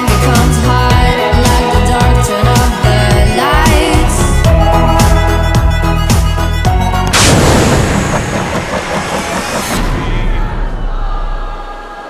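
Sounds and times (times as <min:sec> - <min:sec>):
loud boom with rumbling tail: 0:07.1 - 0:11.3.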